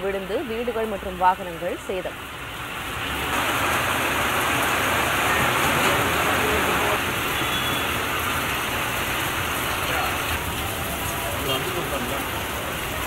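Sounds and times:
heavy rain on a street: 0.0 - 13.0.

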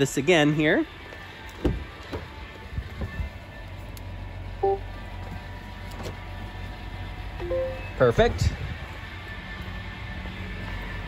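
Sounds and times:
two-note electronic chimes: 4.6 - 4.8, 7.4 - 8.0
low steady hum: 7.4 - 8.0.

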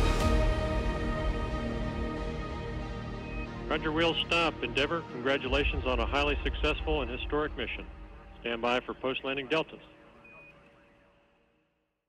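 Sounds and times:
radio hiss and hum: 3.7 - 11.4.

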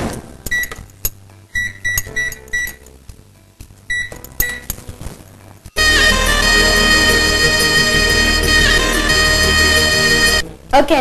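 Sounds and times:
microwave keypad beeps: 0.5 - 0.8, 1.6 - 2.8, 3.9 - 4.7.

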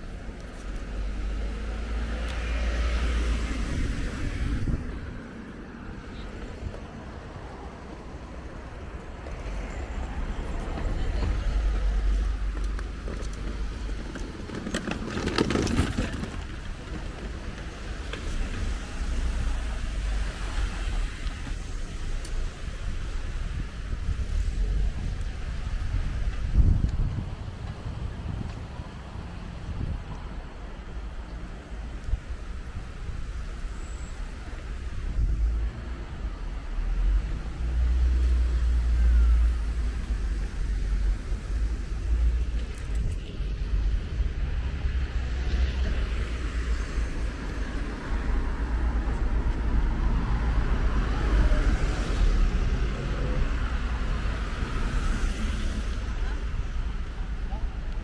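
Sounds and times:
car passing: 0.0 - 58.0
wind buffeting microphone: 2.9 - 7.6, 20.0 - 33.6.

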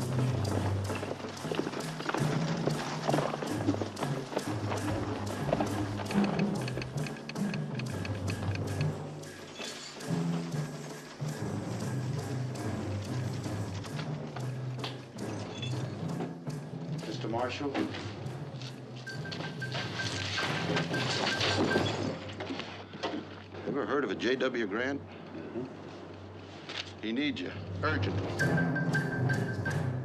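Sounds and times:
orchestral western music: 0.0 - 30.0.

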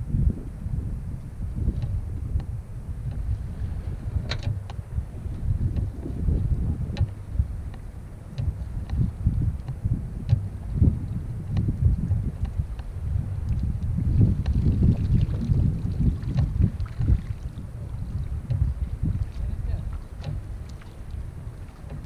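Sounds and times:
wind buffeting microphone: 0.0 - 22.0
rope clicks and drips: 1.7 - 22.0.

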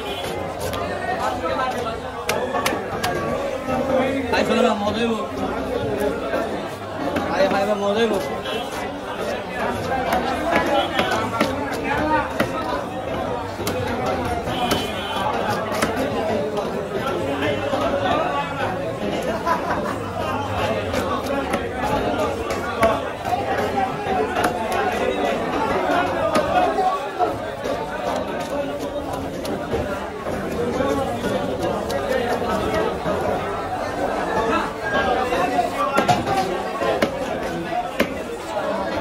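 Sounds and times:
people chattering: 0.0 - 39.0.

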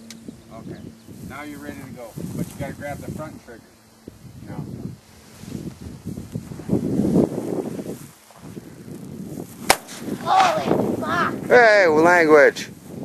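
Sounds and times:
rifle shot: 9.7 - 10.6.

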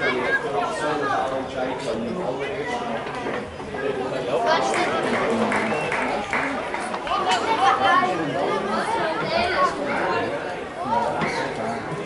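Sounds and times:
chatter of spectators: 0.0 - 12.0.

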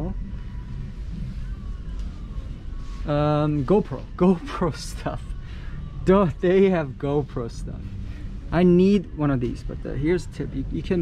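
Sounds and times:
low steady rumble: 0.0 - 11.0.

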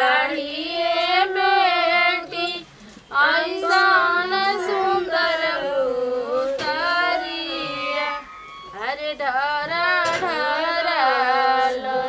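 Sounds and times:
women singing slow song: 0.0 - 12.0.

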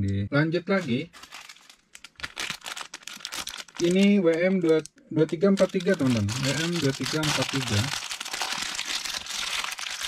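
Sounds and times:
plastic bag crinkling: 0.8 - 10.0.

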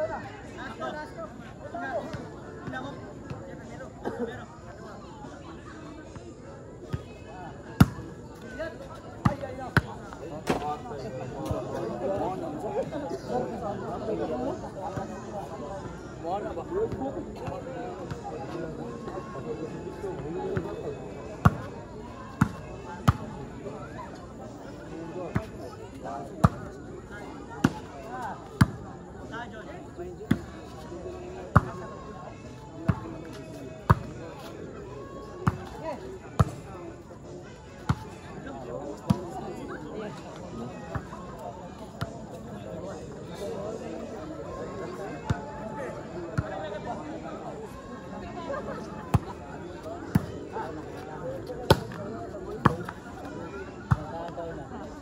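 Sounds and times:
crowd chatter and calls: 0.0 - 55.0.

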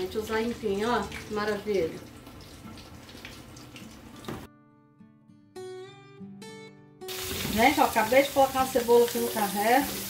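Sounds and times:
background music with plucked guitar: 0.0 - 10.0
kitchen noise hiss: 7.1 - 10.0.

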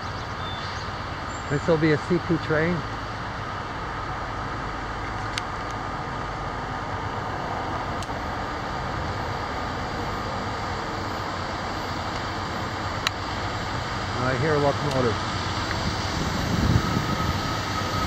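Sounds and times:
freight train rolling past: 1.1 - 18.0
steel wheels on rails: 4.0 - 18.0.

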